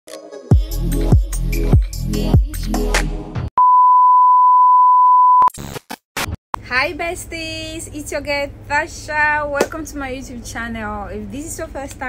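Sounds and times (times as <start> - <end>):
steady test-tone beep: 3.6 - 5.5.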